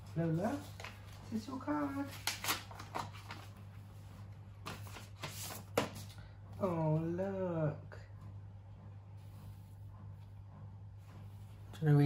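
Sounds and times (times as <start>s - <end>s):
paper rustling: 0.0s - 6.2s
low room hum: 0.0s - 12.0s.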